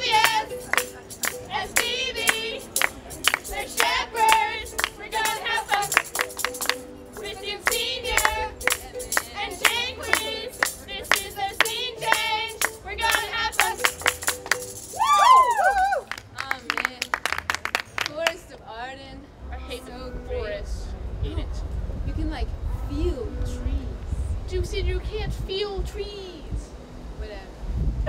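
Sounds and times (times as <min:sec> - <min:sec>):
sharp percussive beat: 0:00.0 - 0:16.4.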